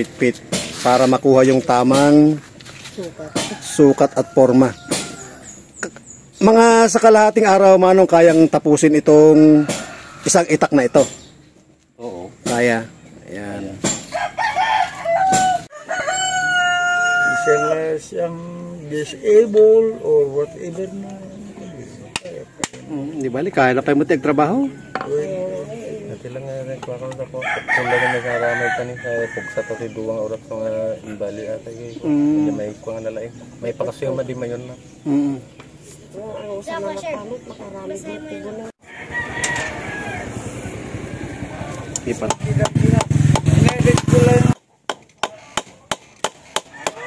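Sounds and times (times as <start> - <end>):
rooster crowing: 3.1 - 5.6, 9.3 - 11.1, 14.1 - 18.1, 23.9 - 25.6, 27.3 - 30.2, 38.1 - 42.0, 46.6 - 47.0.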